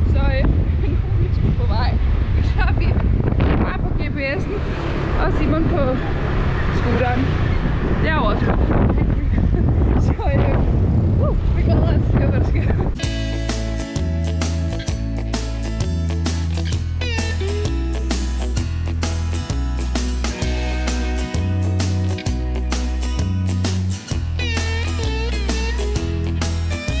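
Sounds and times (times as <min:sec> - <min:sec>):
woman talking: 0:00.0 - 0:03.0, 0:03.6 - 0:04.6, 0:05.2 - 0:06.1, 0:06.7 - 0:07.3, 0:08.0 - 0:10.6, 0:11.2 - 0:12.8
wind buffeting microphone: 0:00.0 - 0:13.8
plucked guitar music: 0:13.0 - 0:27.0.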